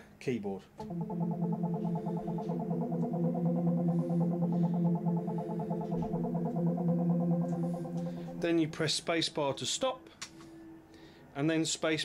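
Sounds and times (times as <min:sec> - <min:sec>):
sustained synth tone: 0:00.8 - 0:09.4.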